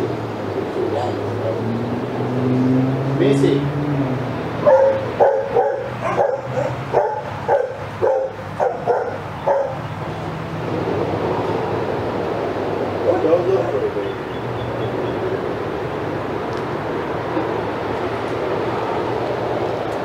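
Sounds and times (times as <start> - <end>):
dog barking: 4.6 - 9.9.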